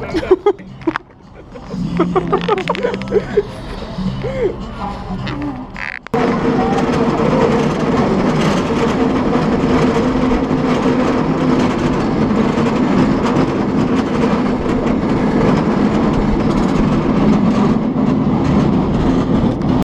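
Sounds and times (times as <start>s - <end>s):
continuous hum: 0.0s - 19.8s
cable car rumbling and rattling: 0.0s - 19.9s.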